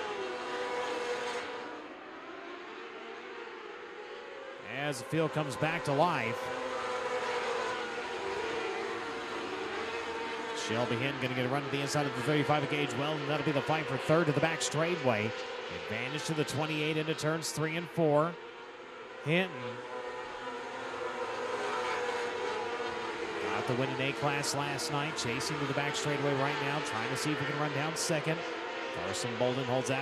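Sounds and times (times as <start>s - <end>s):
racing car engines at high revs: 0.0s - 30.0s.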